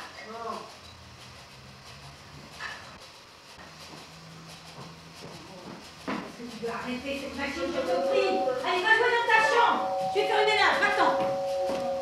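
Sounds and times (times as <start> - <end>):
toy train humming on track: 0.0 - 12.0.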